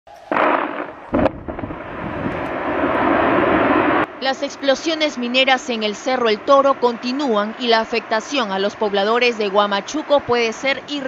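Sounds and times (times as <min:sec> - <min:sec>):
dynamite blast bangs: 0:00.1 - 0:04.1
rumbling blast noise: 0:00.1 - 0:07.0.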